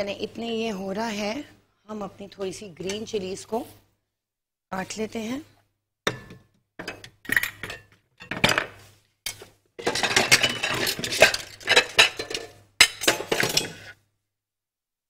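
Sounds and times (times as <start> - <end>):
dishes and utensils clattering: 6.1 - 14.0.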